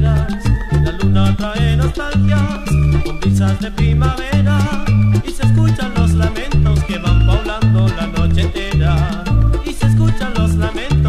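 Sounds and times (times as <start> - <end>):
latin dance music: 0.0 - 11.0.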